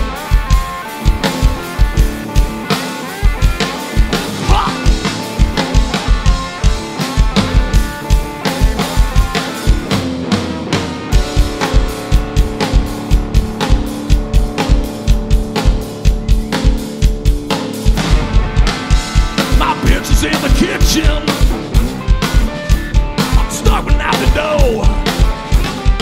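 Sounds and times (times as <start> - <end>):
live rock band playing: 0.0 - 26.0.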